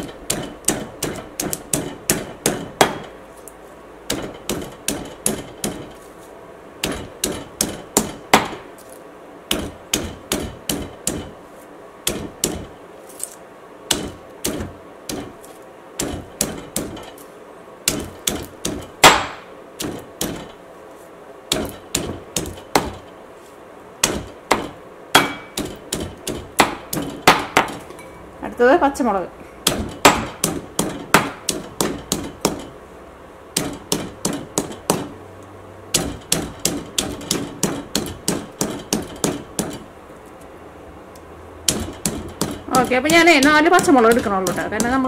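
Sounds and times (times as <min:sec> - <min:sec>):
stone pestle pounding in mortar: 0:00.0 - 0:03.2, 0:04.1 - 0:06.0, 0:06.8 - 0:08.7, 0:09.5 - 0:11.4, 0:12.0 - 0:12.8, 0:13.9 - 0:15.4, 0:16.0 - 0:17.1, 0:17.9 - 0:20.5, 0:21.5 - 0:23.0, 0:24.0 - 0:27.9, 0:29.6 - 0:32.7, 0:33.6 - 0:35.1, 0:35.9 - 0:39.9, 0:41.7 - 0:45.0.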